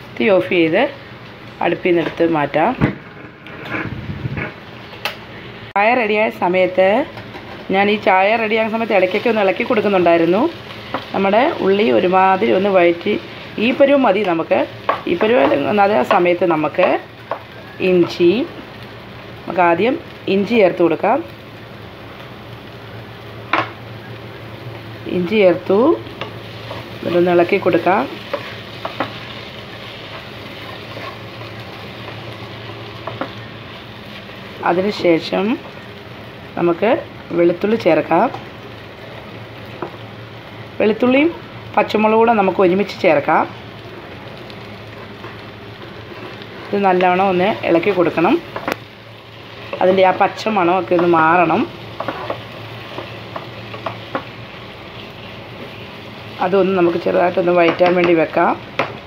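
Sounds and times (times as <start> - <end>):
onions sizzling: 0.0 - 59.0
wooden spoon scraping pan: 3.2 - 4.6, 30.0 - 31.5
spatula scraping and knocking pan: 50.9 - 54.3.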